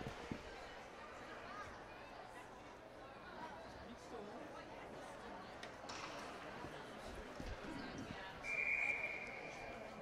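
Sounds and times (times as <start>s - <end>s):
faint arena chatter: 0.0s - 10.0s
referee whistle blast: 8.4s - 9.6s.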